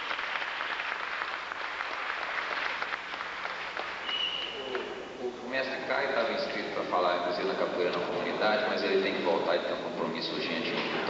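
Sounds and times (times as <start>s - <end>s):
audience applauding: 0.0s - 5.0s
man talking: 4.6s - 11.0s.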